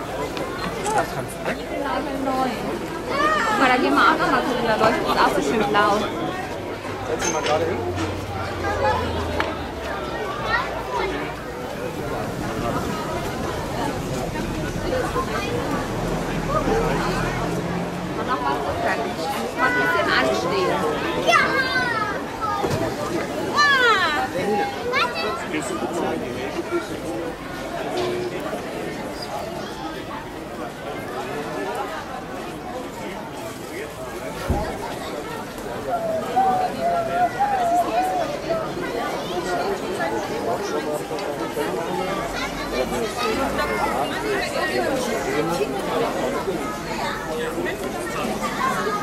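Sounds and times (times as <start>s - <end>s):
children calling and talking: 0.0s - 49.0s
crowd chatter: 0.0s - 49.0s.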